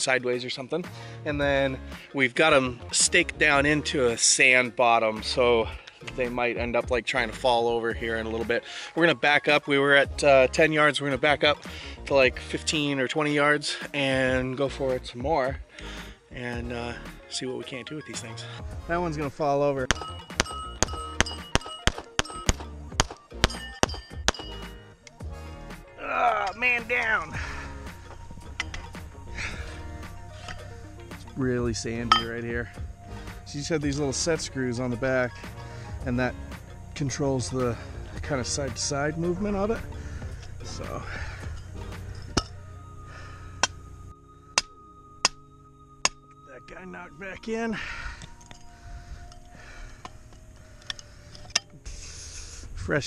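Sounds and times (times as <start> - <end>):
background music: 0.0 - 53.0
metallic ping of steel plates: 19.9 - 24.9, 32.0 - 32.4, 41.5 - 42.7, 43.6 - 47.4
pistol shots: 21.6 - 24.0.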